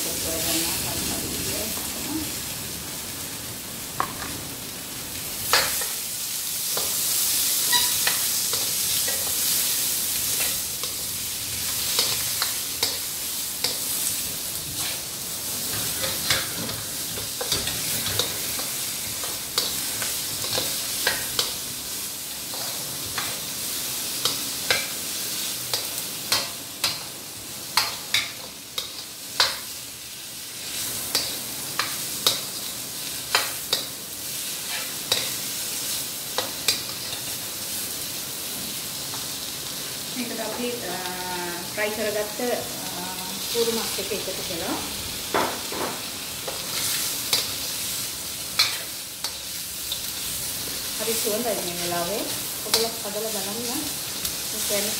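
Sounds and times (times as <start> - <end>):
vegetables sizzling in a wok: 0.0 - 54.9
spatula scraping and knocking wok: 6.6 - 27.1, 30.6 - 37.4, 45.2 - 53.6.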